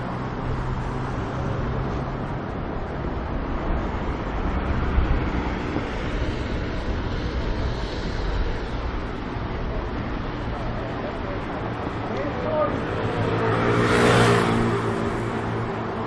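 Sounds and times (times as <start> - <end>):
traffic noise: 0.0 - 16.0.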